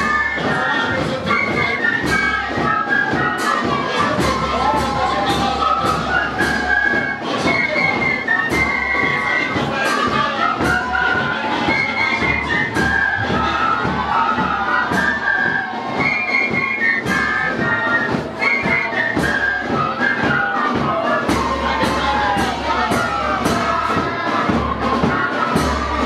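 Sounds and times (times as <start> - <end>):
flutes playing simple melody: 0.0 - 26.0
percussive knocks keeping a beat: 0.0 - 26.0.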